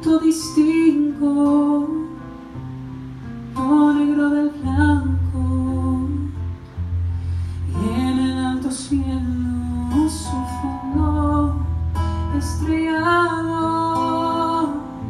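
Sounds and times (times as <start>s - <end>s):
acoustic guitar: 0.0s - 15.0s
man singing a ballad: 7.6s - 11.7s, 12.3s - 15.0s.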